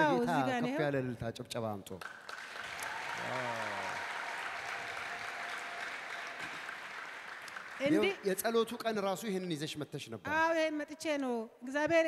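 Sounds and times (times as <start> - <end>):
crowd clapping: 2.0 - 8.7.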